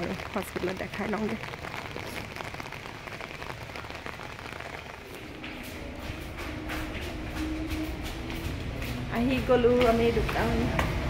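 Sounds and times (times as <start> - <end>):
rain pattering on a wet road: 0.0 - 11.0.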